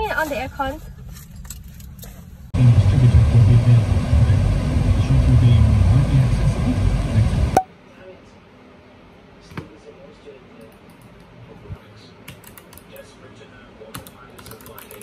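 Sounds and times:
car road and engine rumble: 0:00.0 - 0:07.6.

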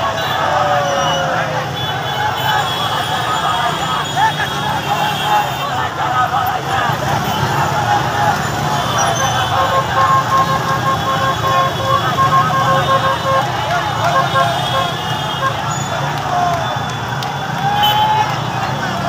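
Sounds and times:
crowd shouting and talking: 0:00.0 - 0:19.0
horn sounding: 0:06.9 - 0:16.9.

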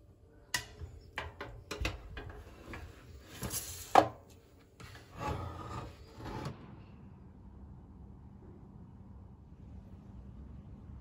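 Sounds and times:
pan scraping metal oven rack: 0:01.2 - 0:04.2, 0:04.8 - 0:06.6.

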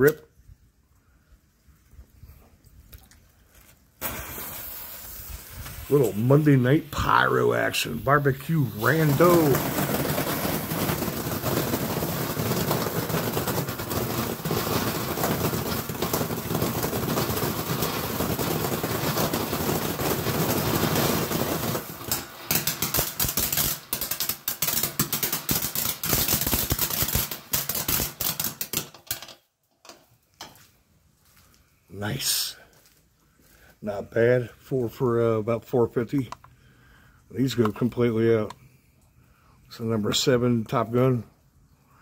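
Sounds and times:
firework crackling: 0:03.9 - 0:29.3
firework fountain hissing: 0:04.0 - 0:29.0.

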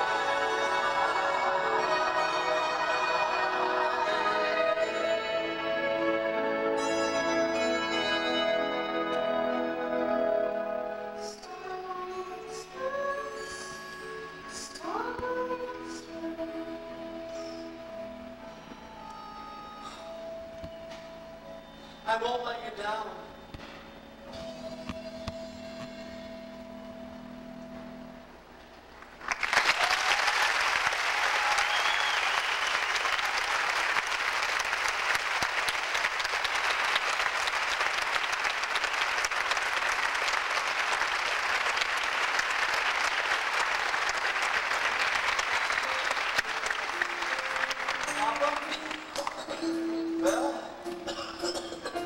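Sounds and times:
audience applause: 0:29.2 - 0:49.5
whoops from audience: 0:29.6 - 0:33.7.

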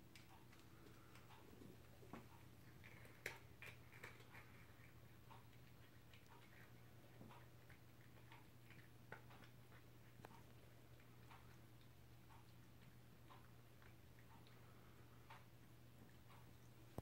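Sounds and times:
steady low hum: 0:00.0 - 0:17.0
cat crunching dry treats: 0:00.1 - 0:11.2.

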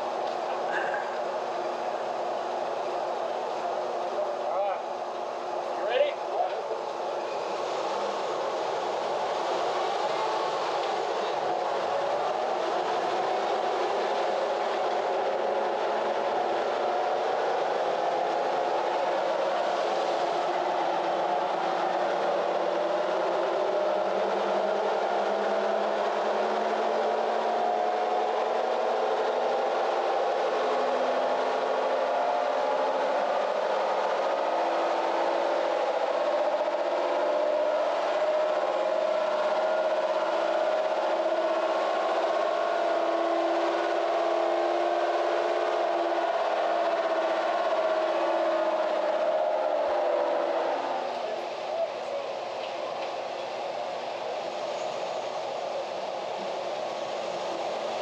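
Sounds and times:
engine droning with rising pitch: 0:00.0 - 0:58.0.

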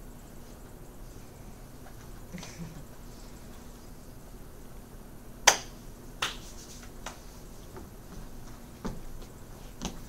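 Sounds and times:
sharp hand slaps: 0:05.4 - 0:07.2.

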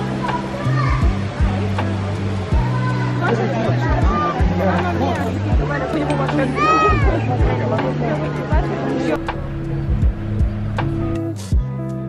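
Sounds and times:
voices: 0:00.0 - 0:11.6
background music with deep beat: 0:00.0 - 0:12.0.

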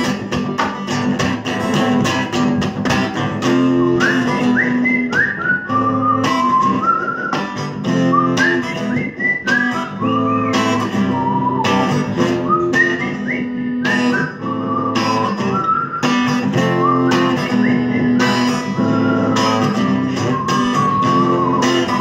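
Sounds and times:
acoustic guitar strumming: 0:00.0 - 0:22.0
whistled melody: 0:03.4 - 0:22.0.

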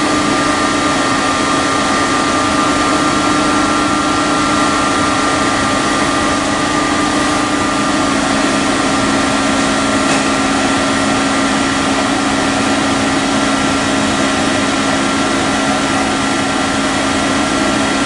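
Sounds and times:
constant machine whining tones: 0:00.0 - 0:18.0
machine mechanical hum: 0:00.0 - 0:18.0.

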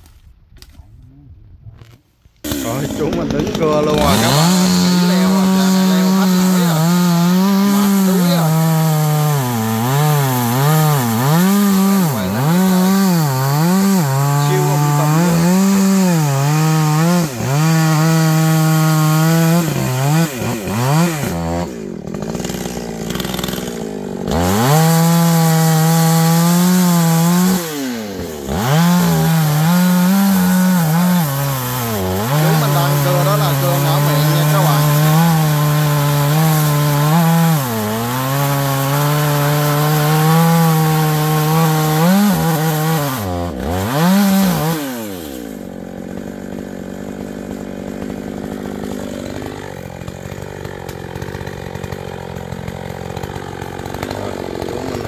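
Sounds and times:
chainsaw cutting wood: 0:01.8 - 0:55.0
chainsaw idling: 0:02.4 - 0:55.0.

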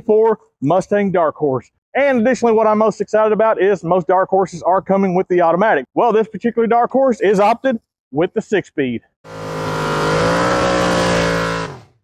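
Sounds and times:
car engine revving: 0:09.3 - 0:12.0.

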